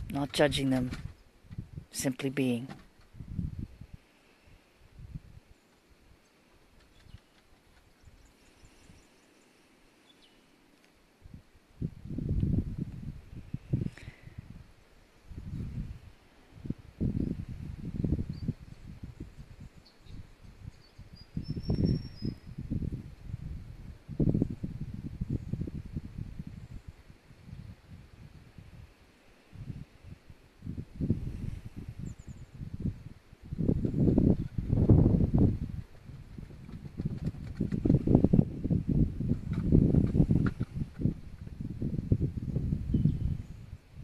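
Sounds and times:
wind buffeting microphone: 0:00.0 - 0:02.0, 0:02.8 - 0:05.6, 0:11.2 - 0:44.0
faint high bird chirp: 0:19.3 - 0:22.6, 0:42.9 - 0:43.7.

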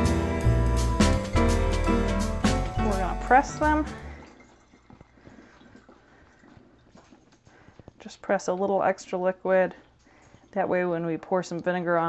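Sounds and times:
wet ticks and drips: 0:04.1 - 0:12.0.

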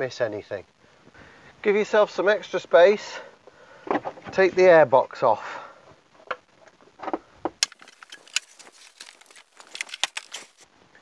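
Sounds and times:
hard plastic clicks and rattles: 0:07.0 - 0:10.6.

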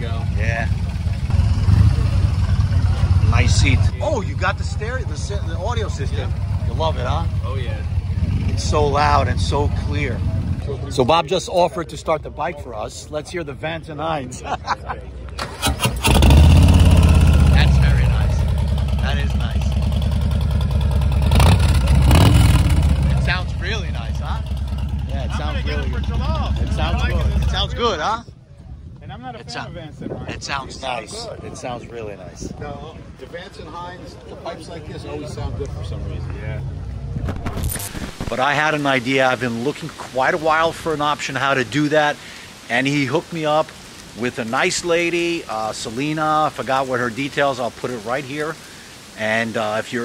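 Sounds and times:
motorcycle engine idling: 0:00.0 - 0:10.9, 0:15.9 - 0:27.7
motorcycle starter cranking: 0:15.4 - 0:17.2
motorcycle throttle blips: 0:15.4 - 0:27.7.

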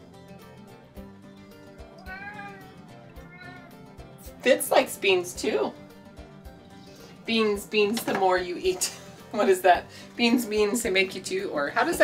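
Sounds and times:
soft background music: 0:00.0 - 0:12.0
cat meowing: 0:02.0 - 0:03.8.

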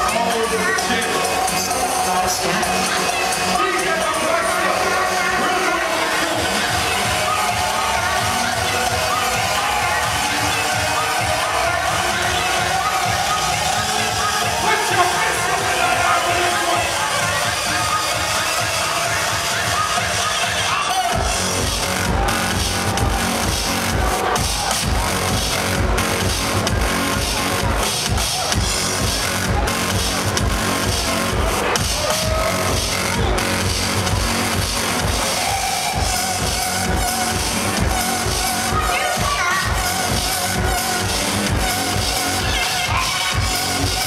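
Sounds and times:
electronic dance music: 0:00.0 - 0:44.0.

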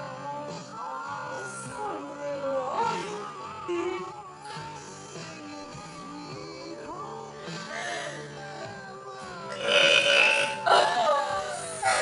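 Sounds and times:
woman burping loudly: 0:09.5 - 0:11.2.

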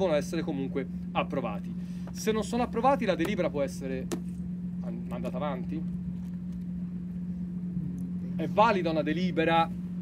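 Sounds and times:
engine running hum: 0:00.0 - 0:10.0.

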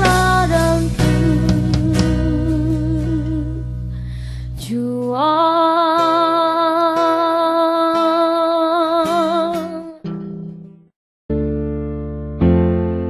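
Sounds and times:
acoustic guitar: 0:00.0 - 0:10.9.

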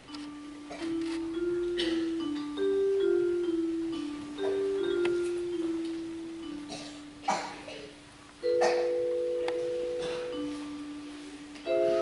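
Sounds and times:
soft piano notes: 0:00.0 - 0:12.0.

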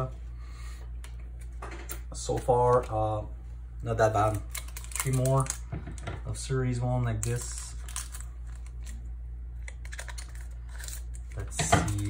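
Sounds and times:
steady low hum: 0:00.0 - 0:12.0
cards rustling: 0:03.9 - 0:05.7, 0:07.1 - 0:12.0.

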